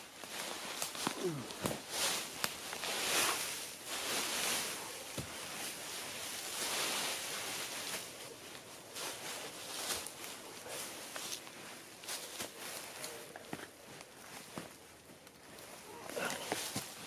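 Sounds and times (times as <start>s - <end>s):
dry leaves rustling and crunching: 0.0s - 17.0s
twigs snapping: 0.2s - 3.5s.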